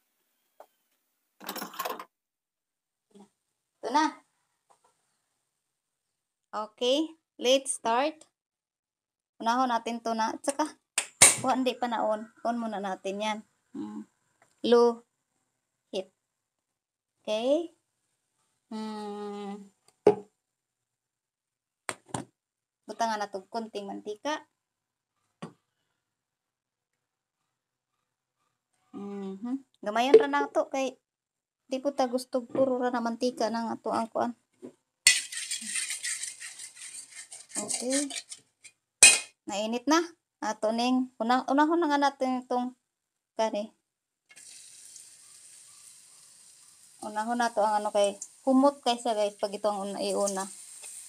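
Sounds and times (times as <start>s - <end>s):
person humming: 13.8s - 14.1s, 18.7s - 19.7s, 29.0s - 29.6s
onion sizzling in oil: 35.1s - 38.3s, 44.3s - 51.0s.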